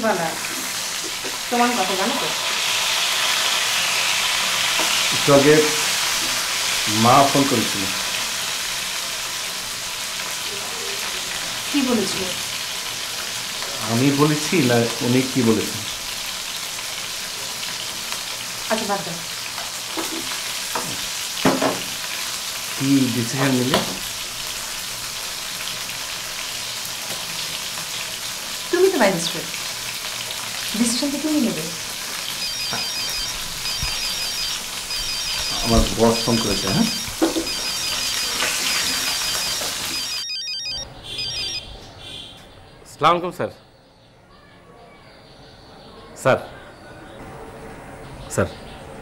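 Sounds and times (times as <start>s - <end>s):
food sizzling in a pan: 0.0s - 40.4s
phone ringtone beeps: 32.3s - 41.7s.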